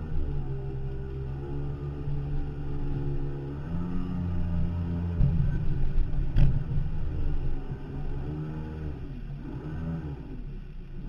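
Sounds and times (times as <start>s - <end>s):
boat engine running: 0.0s - 11.0s
water knocking on hull: 5.1s - 7.0s.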